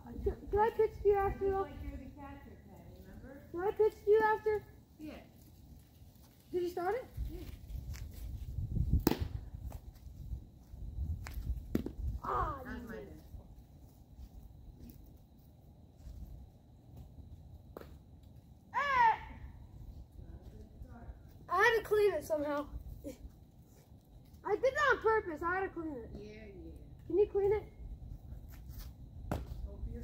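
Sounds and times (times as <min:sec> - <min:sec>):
baseball smacking into glove: 0:09.0 - 0:09.4, 0:11.2 - 0:12.0, 0:29.3 - 0:29.6.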